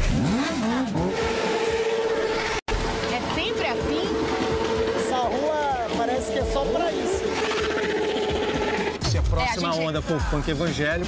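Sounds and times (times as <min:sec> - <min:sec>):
motorcycles running: 0:00.0 - 0:09.0.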